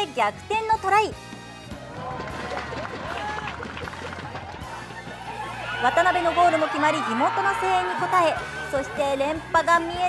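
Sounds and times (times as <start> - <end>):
background music: 0.0 - 10.0
distant spectators shouting: 2.0 - 10.0.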